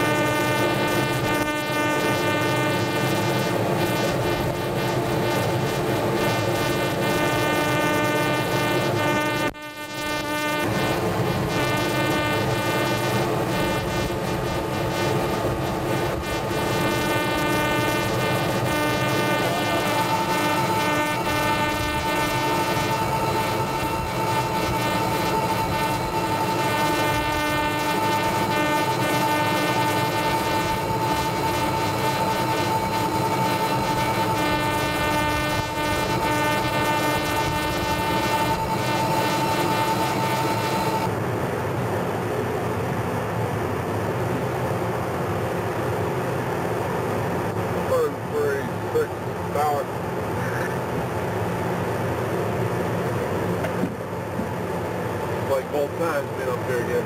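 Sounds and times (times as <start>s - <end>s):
high whining tone: 0.0s - 41.1s
machinery and ventilation drone: 0.0s - 57.0s.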